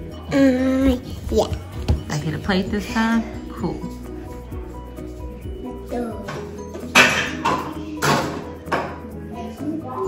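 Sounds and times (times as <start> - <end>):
music playing: 0.0 - 10.0
objects knocking: 6.3 - 9.1.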